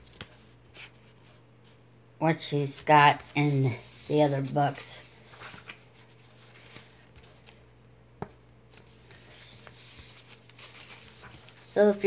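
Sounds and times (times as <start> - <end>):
paper pages rustling: 0.0 - 1.8, 2.6 - 12.0
low steady hum: 0.0 - 12.0.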